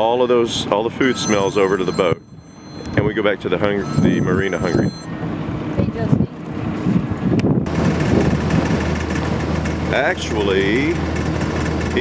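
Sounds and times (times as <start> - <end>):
diesel engine running: 0.0 - 12.0
wind buffeting microphone: 3.8 - 9.6.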